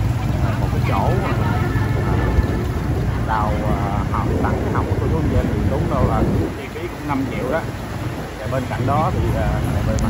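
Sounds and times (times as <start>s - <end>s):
motorbike engine rumble: 0.0s - 10.0s
voices: 0.0s - 10.0s
wind on microphone: 0.0s - 10.0s.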